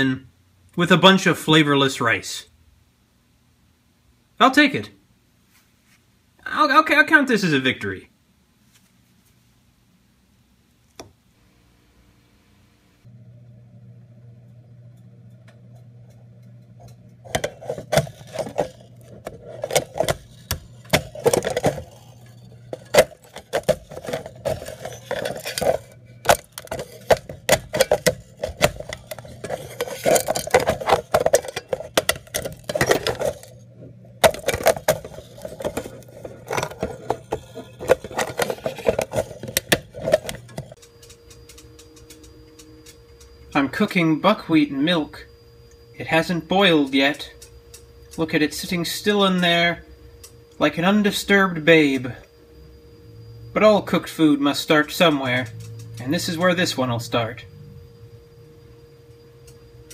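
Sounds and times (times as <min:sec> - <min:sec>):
microwave oven humming: 0:10.0 - 0:59.9
irregular clicks and rattles: 0:15.3 - 0:33.6, 0:34.2 - 0:43.4, 0:55.1 - 0:56.1.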